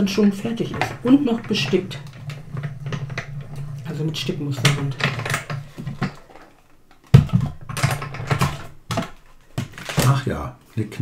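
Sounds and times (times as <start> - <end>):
plates rattling: 0.0 - 10.2
loud plastic clack: 0.3 - 10.2.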